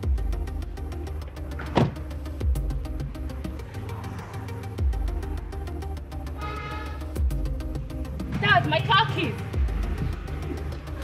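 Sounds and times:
film music with steady beat: 0.0s - 11.0s.

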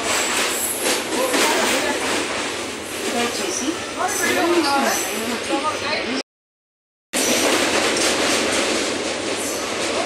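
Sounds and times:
train clatter: 0.0s - 5.1s, 7.2s - 10.0s
train wheels rumbling on rails: 0.0s - 5.8s, 7.2s - 10.0s.

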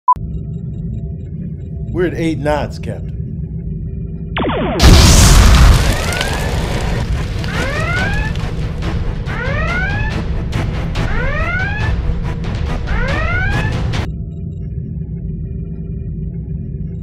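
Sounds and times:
background music: 0.2s - 17.0s
explosion boom: 4.4s - 10.0s
sharp crackling hits: 4.4s - 11.9s.

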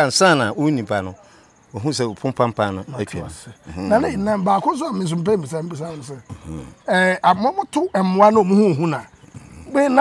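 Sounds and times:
faint insects chirping: 0.0s - 10.0s
man speaking: 0.0s - 10.0s.

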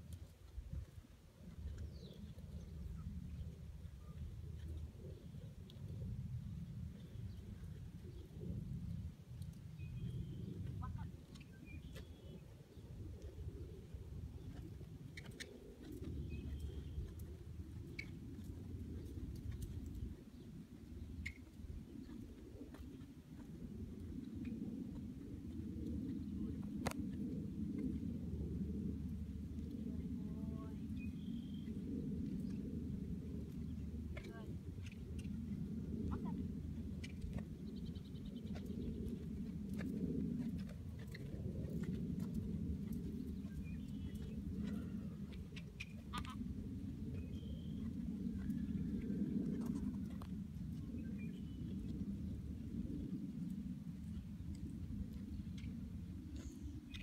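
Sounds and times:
low outdoor rumble: 0.0s - 57.0s.

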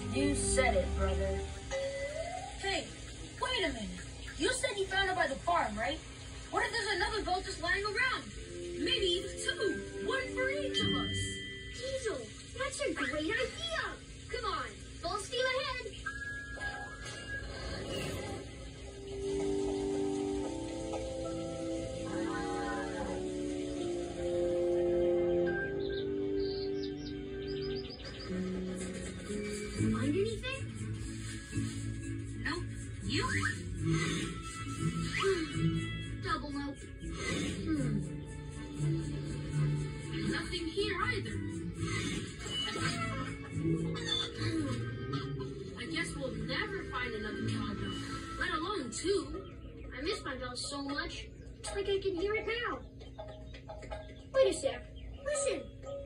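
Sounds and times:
cartoon music through tv speakers: 0.0s - 5.7s, 6.5s - 56.0s
bird chirps: 25.5s - 29.8s, 52.2s - 56.0s.

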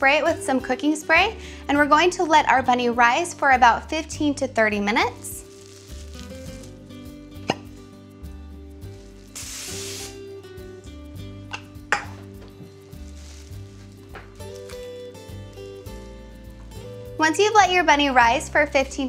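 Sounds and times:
background music: 0.0s - 19.0s
aerosol spray hiss: 8.8s - 10.4s, 12.8s - 14.8s
plastic wrap and can clicks: 13.1s - 15.0s.

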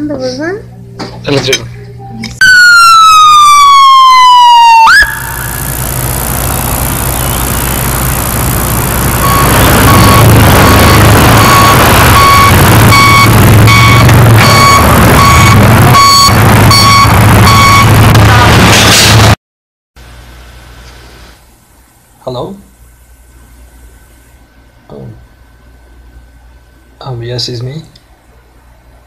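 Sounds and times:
ambulance siren wail: 2.4s - 6.1s, 9.2s - 17.9s
loud noisy rush: 4.0s - 19.4s
repeating beep: 9.1s - 18.0s.

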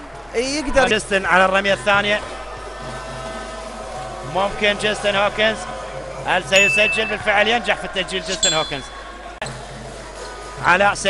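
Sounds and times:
indoor arena hum: 0.0s - 11.0s
man's voice: 6.3s - 8.9s.

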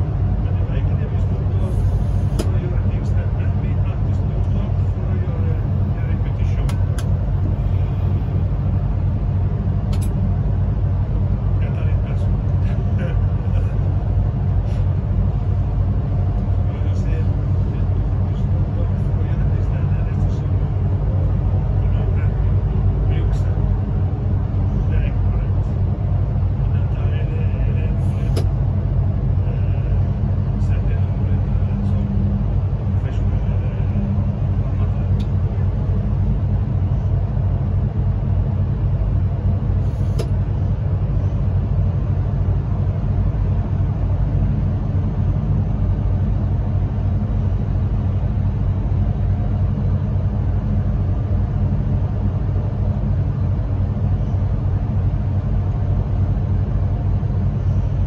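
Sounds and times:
train rumbling: 0.0s - 58.0s.

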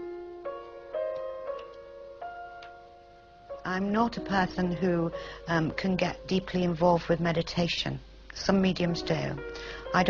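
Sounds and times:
soft piano notes: 0.0s - 7.5s.

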